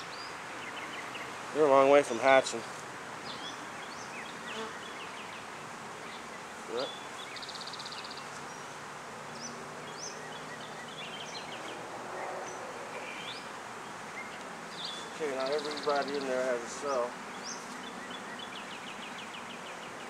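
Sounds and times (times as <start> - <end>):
honeybees buzzing: 0.0 - 20.0.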